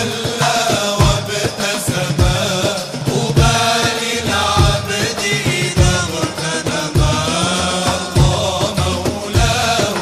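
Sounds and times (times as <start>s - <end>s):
deep drum beat: 0.0s - 10.0s
vocal group singing: 0.0s - 10.0s.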